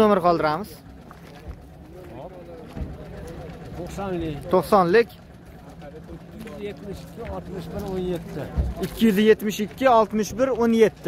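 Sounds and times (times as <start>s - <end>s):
low outdoor rumble: 0.0s - 11.0s
people talking indistinctly: 0.0s - 11.0s.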